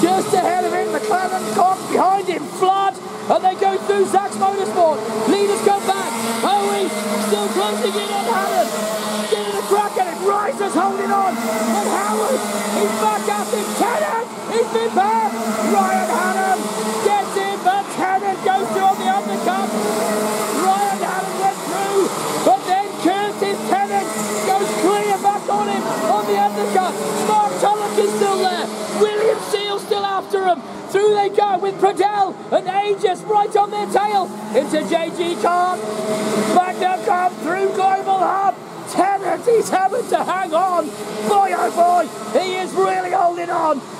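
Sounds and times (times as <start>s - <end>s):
kart engines racing past: 0.0s - 43.9s.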